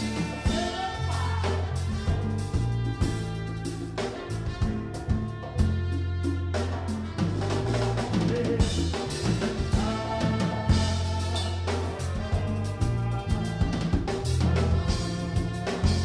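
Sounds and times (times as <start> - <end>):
drum kit: 0.0 - 16.0
electric bass: 0.0 - 16.0
horn section: 0.0 - 16.0
keyboard: 0.0 - 16.0.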